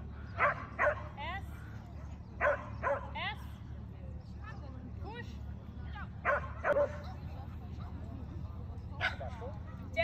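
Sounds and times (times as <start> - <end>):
dog barking: 2.4 - 3.1, 6.2 - 7.2.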